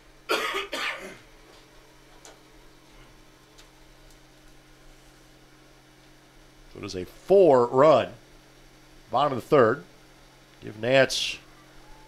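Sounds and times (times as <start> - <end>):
low electrical hum: 0.0 - 12.0
man coughing: 0.3 - 1.2.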